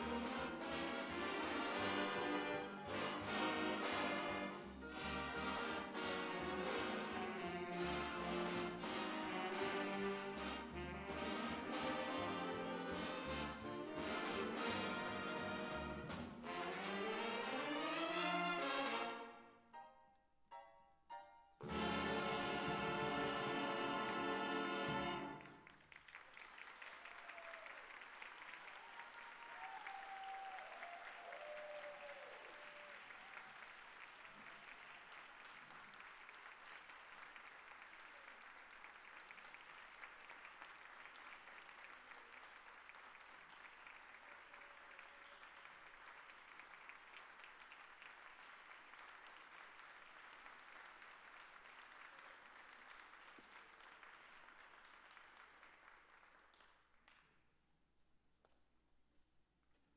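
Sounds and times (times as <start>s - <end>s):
audience applauding: 0.0s - 16.4s, 21.7s - 57.4s.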